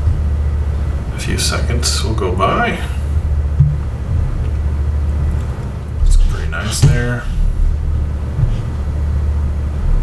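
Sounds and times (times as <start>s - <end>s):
low background rumble: 0.0s - 10.0s.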